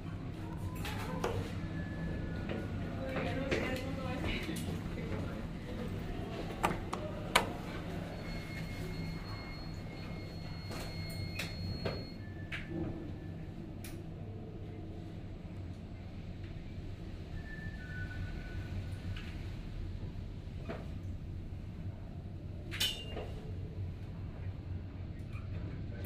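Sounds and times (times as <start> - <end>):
elevator car low hum: 0.0 - 26.0.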